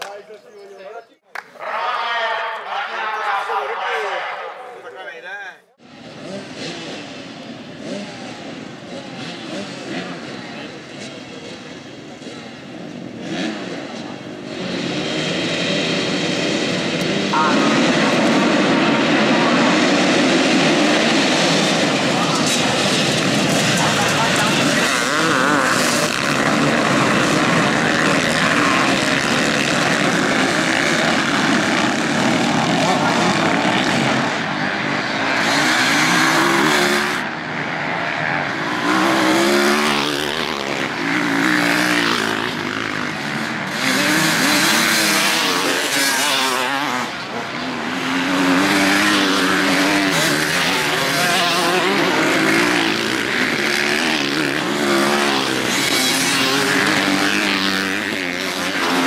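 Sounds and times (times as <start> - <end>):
motocross bikes revving and accelerating: 5.8 - 59.0.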